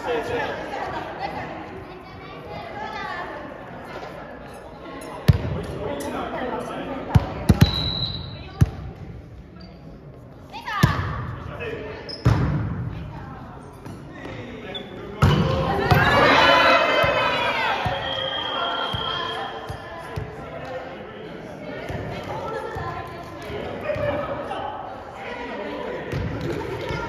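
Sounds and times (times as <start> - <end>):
chatter: 0.0 - 12.2, 12.9 - 27.0
players shouting and cheering: 15.2 - 20.9, 21.6 - 27.0.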